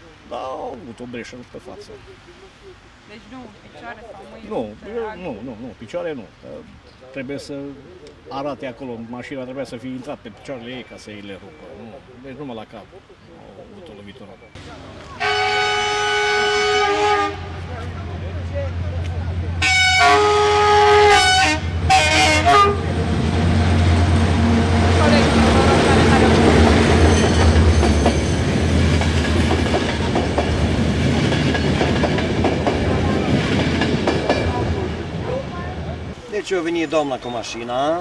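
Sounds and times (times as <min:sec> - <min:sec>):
locomotive engine hum: 0:14.6 - 0:36.2
locomotive horn blasts: 0:15.2 - 0:17.6, 0:19.6 - 0:23.0.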